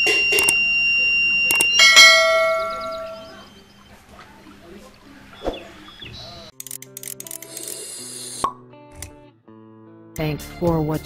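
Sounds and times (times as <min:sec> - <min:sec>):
ringing bell chime: 0:00.0 - 0:03.7
alarm buzzer high-pitched tone: 0:00.0 - 0:03.8
short click: 0:00.3 - 0:00.6, 0:01.5 - 0:01.7.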